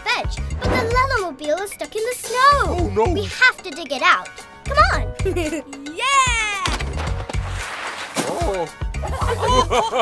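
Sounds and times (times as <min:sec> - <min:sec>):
cartoon music with steady beat: 0:00.0 - 0:07.4.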